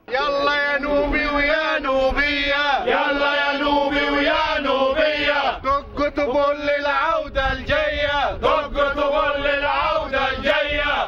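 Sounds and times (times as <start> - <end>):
protesters chanting: 0.0 - 11.0.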